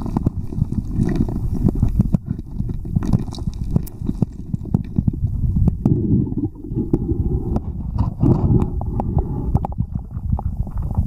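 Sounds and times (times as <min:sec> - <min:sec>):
muffled underwater churning: 0:00.0 - 0:11.0.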